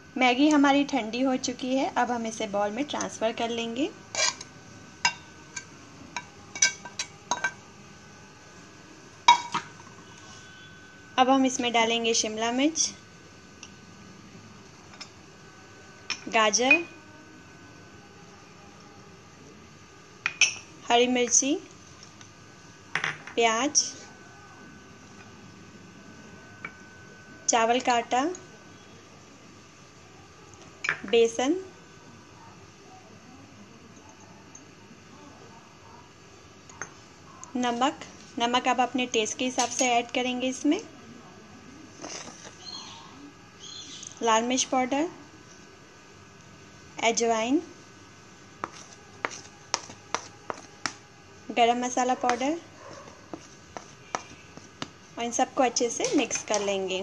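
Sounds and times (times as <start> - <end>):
woman speaking: 0.0 - 4.0, 11.2 - 13.0, 16.3 - 17.0, 20.8 - 21.7, 23.4 - 24.1, 27.5 - 28.5, 31.0 - 31.7, 37.4 - 41.0, 44.2 - 45.2, 47.0 - 47.8, 51.5 - 52.7, 55.2 - 57.0.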